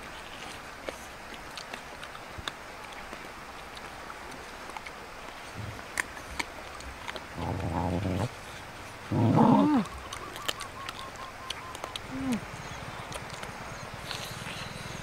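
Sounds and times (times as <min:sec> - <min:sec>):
chewing clicks: 0:00.0 - 0:15.0
dog growling: 0:05.5 - 0:05.8, 0:07.2 - 0:10.0, 0:12.0 - 0:13.2.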